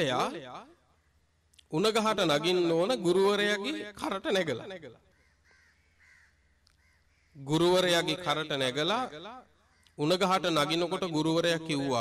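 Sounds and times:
man preaching: 0.0s - 0.6s, 1.6s - 5.0s, 7.4s - 9.3s, 10.0s - 12.0s
faint bird calls: 5.1s - 7.4s.

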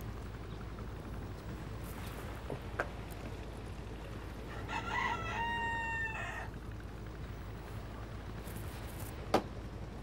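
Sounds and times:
rooster crowing: 4.5s - 6.6s.

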